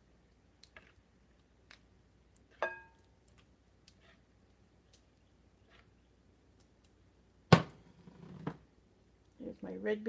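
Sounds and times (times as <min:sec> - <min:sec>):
dish clink: 0:02.6 - 0:03.0.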